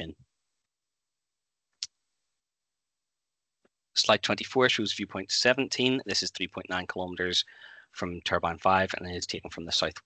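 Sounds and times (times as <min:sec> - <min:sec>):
man speaking: 0:04.0 - 0:10.0.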